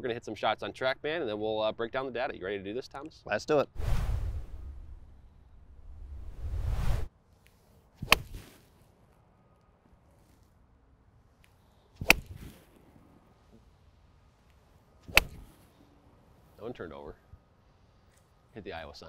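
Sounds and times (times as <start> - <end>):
whoosh: 3.8 - 7.1
golf club striking ball: 8.0 - 8.6, 12.0 - 12.9, 15.0 - 15.7.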